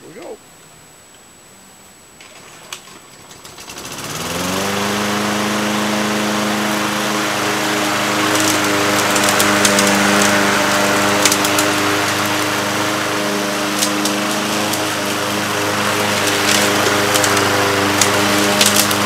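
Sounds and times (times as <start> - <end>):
lawn mower engine running: 3.3 - 19.0.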